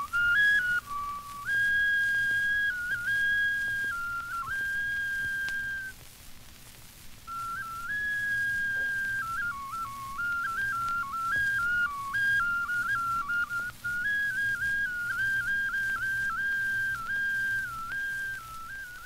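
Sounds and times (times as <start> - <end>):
whistle-like wind instrument melody: 0.0 - 6.0, 7.3 - 19.0
record hum and hiss: 0.0 - 19.0.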